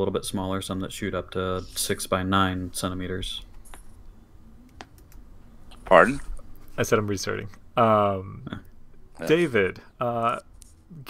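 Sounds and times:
low room hum: 0.0s - 11.0s
person speaking: 5.7s - 11.0s.

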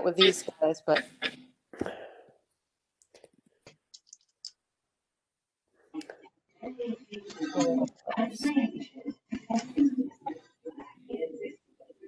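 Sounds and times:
person speaking: 0.0s - 2.1s.

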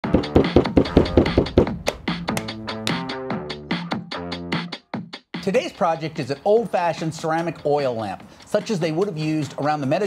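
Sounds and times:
hand patting clay: 0.3s - 3.0s.

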